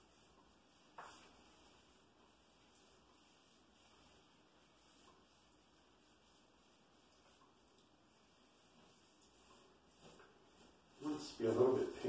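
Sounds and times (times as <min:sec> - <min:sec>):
paintbrush dabbing on wall: 0:00.0 - 0:12.0.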